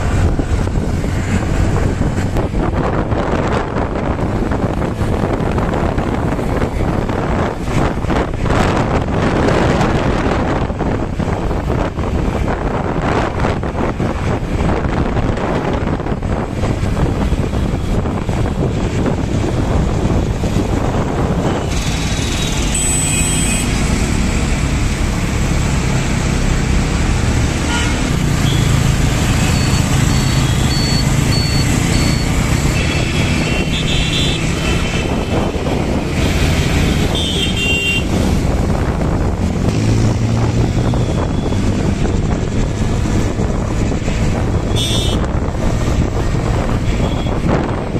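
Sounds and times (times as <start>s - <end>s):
wind on microphone: 0.0s - 22.8s, 23.7s - 47.9s
vehicle horn honks: 22.7s - 23.7s, 27.7s - 28.7s, 37.1s - 38.1s, 44.7s - 45.3s.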